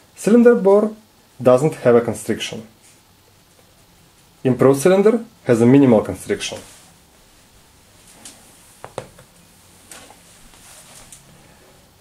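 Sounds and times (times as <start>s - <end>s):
faint handling rustle: 6.3s - 8.8s, 9.7s - 11.7s.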